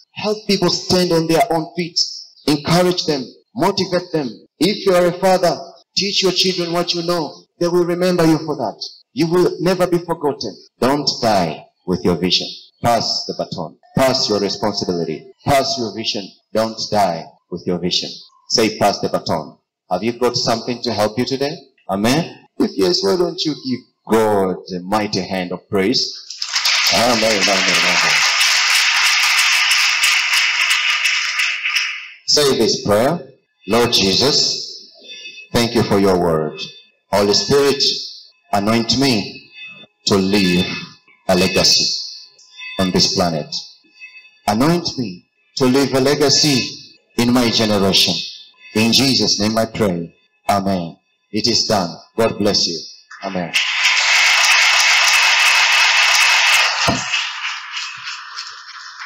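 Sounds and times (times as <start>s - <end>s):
congregation clapping: 26.2s - 32.6s, 53.1s - 59.0s.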